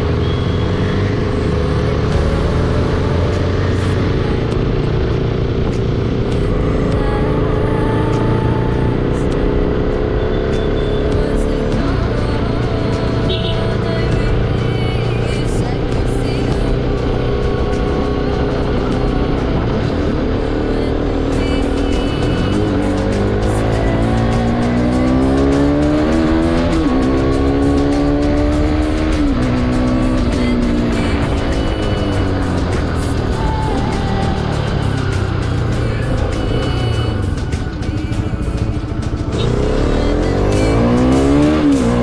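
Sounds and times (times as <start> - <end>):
motorcycle engine accelerating: 0.0 - 42.0.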